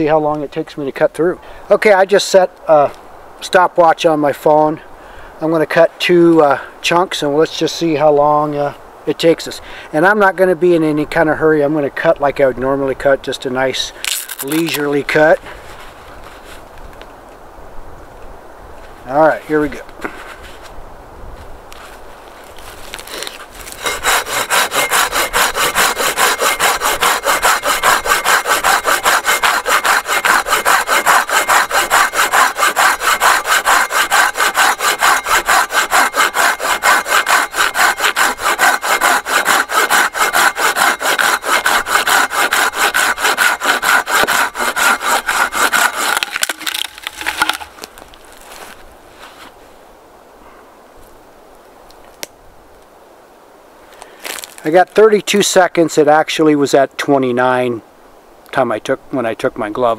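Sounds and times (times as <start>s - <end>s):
pull saw cutting a log: 14.1s - 15.1s, 22.9s - 48.6s.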